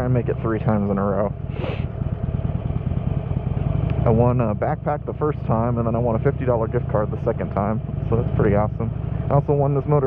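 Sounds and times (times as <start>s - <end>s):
motorcycle engine cruising: 0.0s - 10.0s
road and wind noise: 0.0s - 10.0s.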